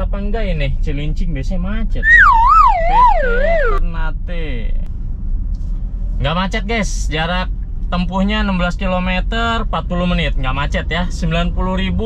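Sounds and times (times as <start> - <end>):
warbling siren-like wail: 2.0 - 3.8.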